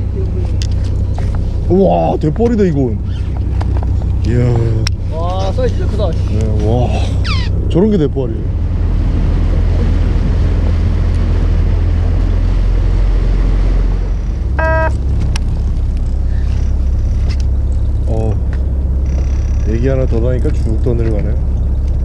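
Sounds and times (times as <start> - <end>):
boat engine rumbling: 0.0 - 22.0
short high call: 14.6 - 15.0.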